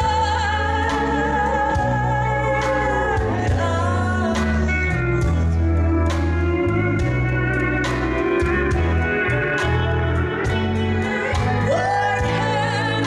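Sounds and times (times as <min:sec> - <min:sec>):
country band playing slow ballad: 0:00.0 - 0:13.0
pedal steel guitar: 0:00.0 - 0:13.0.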